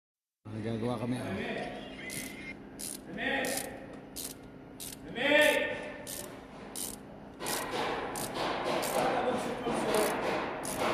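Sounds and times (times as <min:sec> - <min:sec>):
ratchet wrench clicking: 0:02.1 - 0:09.1, 0:09.9 - 0:10.9.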